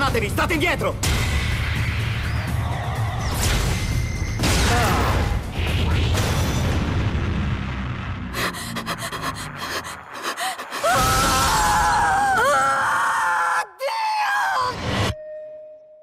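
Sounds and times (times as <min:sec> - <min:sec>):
woman screaming: 0:10.3 - 0:14.8
ringing tone: 0:15.2 - 0:16.0.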